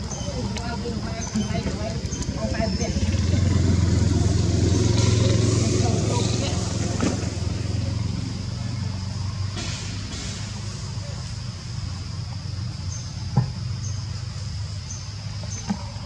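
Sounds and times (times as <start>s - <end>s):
low engine hum: 0.0s - 16.0s.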